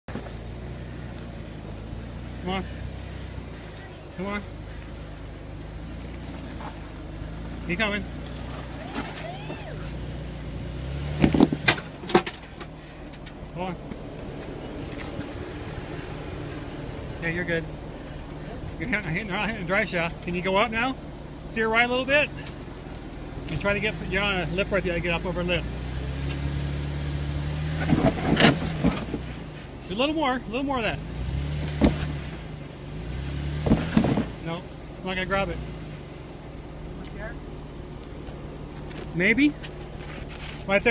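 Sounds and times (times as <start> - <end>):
car engine at low revs: 0.0 - 40.9
sharp knocks and crunches: 11.1 - 12.7, 27.8 - 29.3, 31.6 - 32.4, 33.6 - 34.4.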